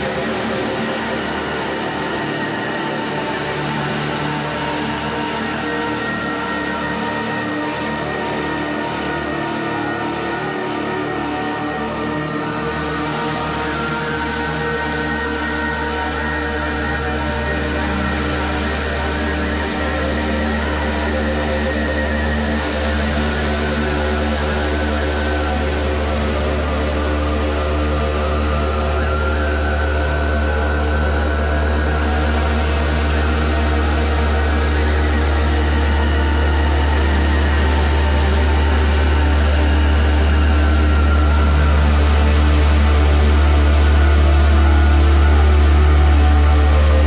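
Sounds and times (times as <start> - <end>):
deep steady bass: 0.0 - 47.0.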